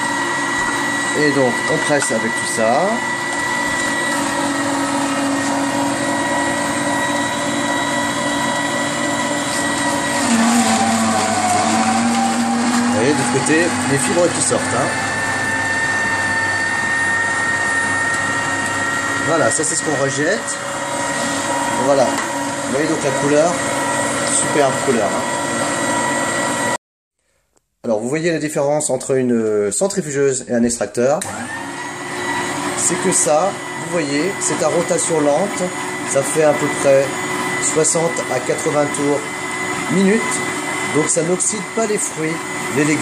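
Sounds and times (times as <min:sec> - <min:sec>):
juicer motor hum and whine: 0:00.0 - 0:26.8, 0:31.2 - 0:43.0
person speaking: 0:00.1 - 0:15.3, 0:19.0 - 0:25.4, 0:32.6 - 0:43.0.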